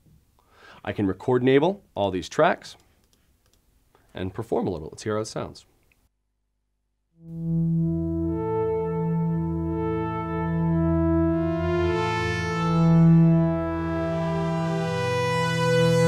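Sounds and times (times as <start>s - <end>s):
ambient synth pad chord: 7.2s - 16.0s.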